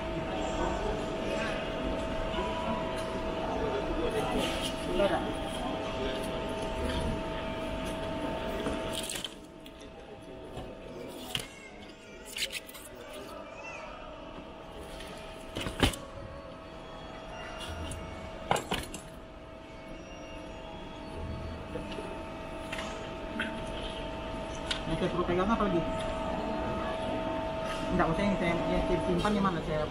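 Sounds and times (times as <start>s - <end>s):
steady hum: 0.0s - 11.1s, 14.0s - 29.9s
murmur of voices: 0.0s - 29.9s.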